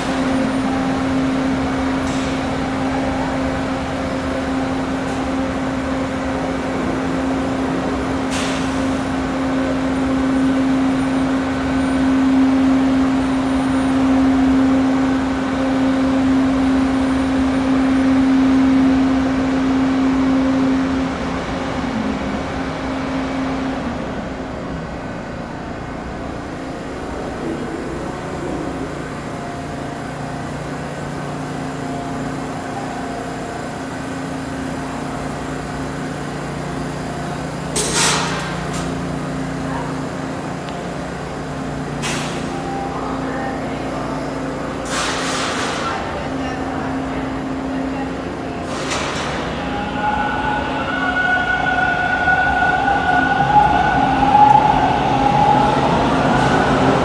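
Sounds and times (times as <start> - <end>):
subway train electrical hum: 0.0 - 57.0.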